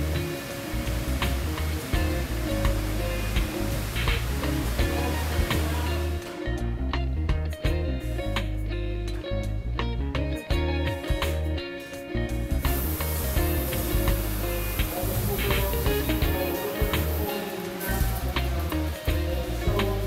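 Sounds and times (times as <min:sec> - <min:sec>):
water spraying into basin: 0:00.0 - 0:06.4, 0:12.6 - 0:20.0
background guitar music: 0:00.0 - 0:20.0.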